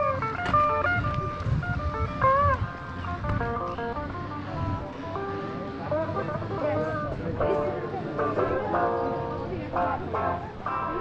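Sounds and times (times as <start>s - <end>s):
guitar melody with bent notes: 0.0s - 11.0s.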